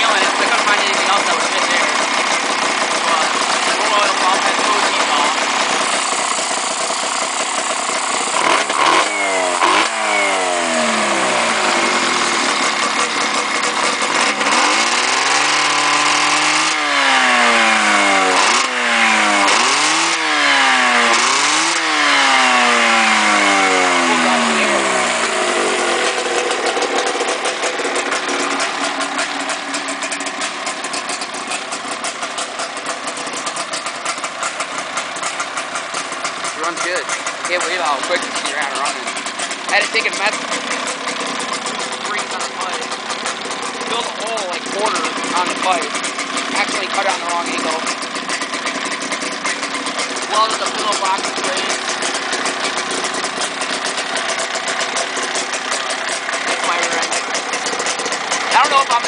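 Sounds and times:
two-stroke engine revving and idling: 0.0s - 59.0s.

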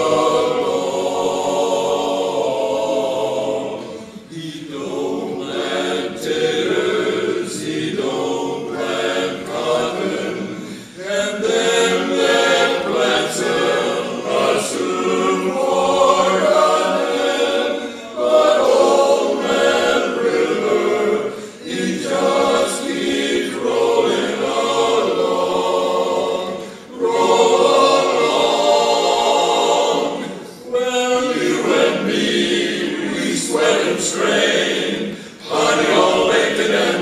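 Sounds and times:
men's chorus singing a cappella: 0.0s - 37.0s.

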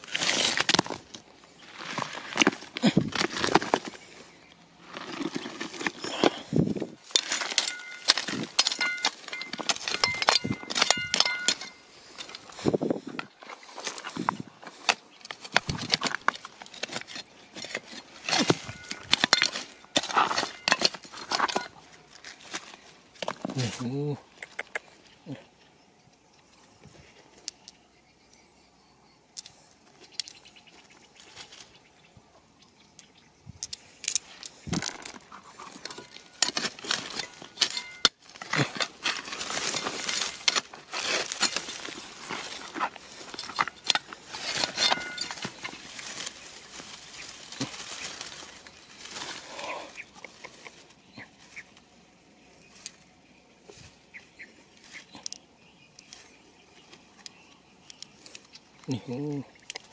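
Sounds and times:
digging and scraping through shale: 0.0s - 24.0s, 33.7s - 51.8s
stones clicking: 33.0s - 49.2s.

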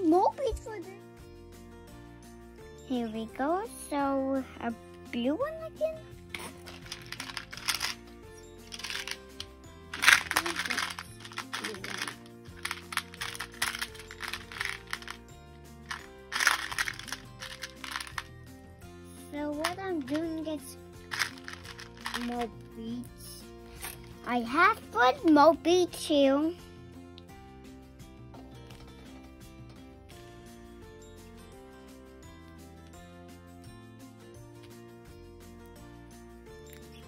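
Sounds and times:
background music: 0.0s - 37.0s
plastic beads rattling: 6.3s - 18.3s, 19.5s - 22.5s, 23.8s - 24.2s.

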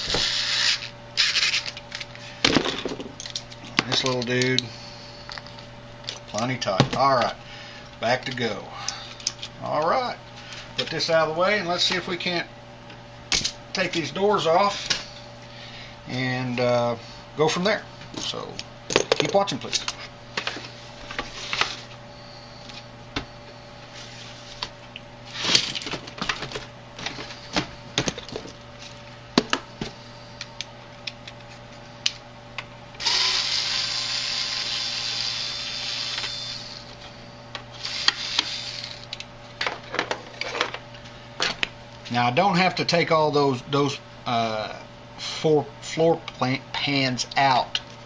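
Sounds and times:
electric screwdriver running: 33.0s - 37.0s, 37.8s - 39.1s.

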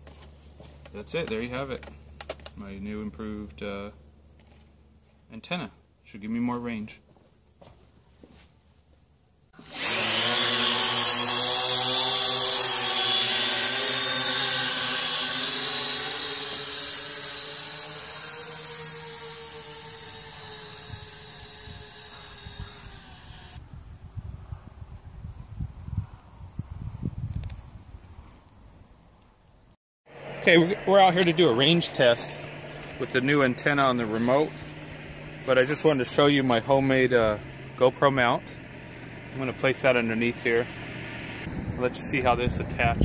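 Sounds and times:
drone propellers whining: 9.6s - 23.6s, 30.1s - 43.0s
wind rumbling on microphone: 20.7s - 29.0s, 41.4s - 43.0s.

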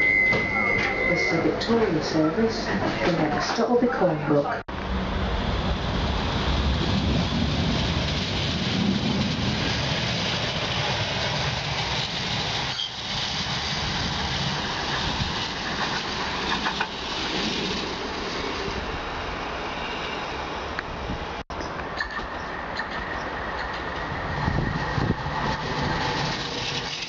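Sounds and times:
tram wheels rumbling on rail: 0.0s - 27.0s.

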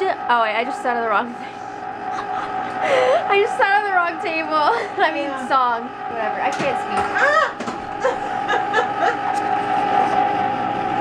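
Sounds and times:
ice cream maker motor whine: 0.0s - 11.0s
snickering laughter: 2.1s - 3.3s, 7.2s - 9.5s.

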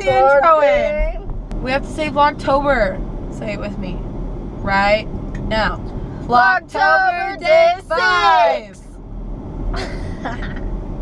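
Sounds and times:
car cabin road rumble: 0.0s - 11.0s
person laughing: 9.8s - 10.7s.

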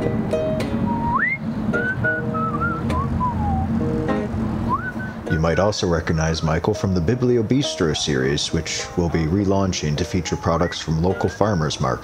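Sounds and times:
fingerpicked acoustic guitar: 0.0s - 5.6s
whistled melody: 0.8s - 3.8s, 4.7s - 5.3s, 10.5s - 11.8s.

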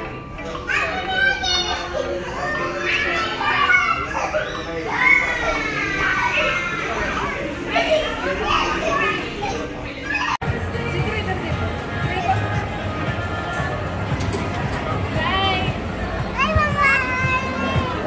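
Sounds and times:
faint music: 0.0s - 18.0s
children calling out and shrieking: 0.4s - 10.4s, 15.5s - 18.0s.

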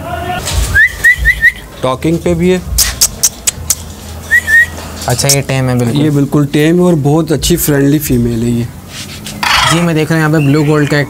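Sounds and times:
cockatoo whistled chirps: 0.7s - 1.7s, 4.3s - 4.8s.

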